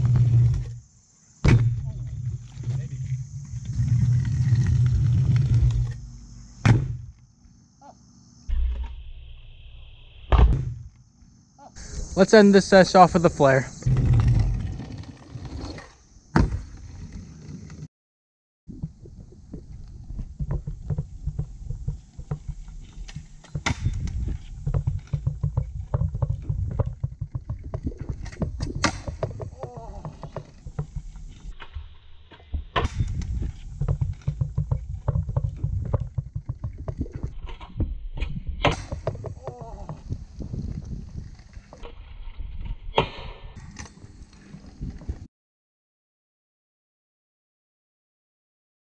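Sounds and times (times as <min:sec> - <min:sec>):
scooter wheels rolling on asphalt: 0:00.0 - 0:06.6, 0:12.2 - 0:17.9, 0:18.8 - 0:31.6, 0:33.0 - 0:37.9, 0:38.9 - 0:42.7, 0:43.6 - 0:45.3
scooter landing clacks: 0:18.9 - 0:31.6, 0:32.7 - 0:40.2.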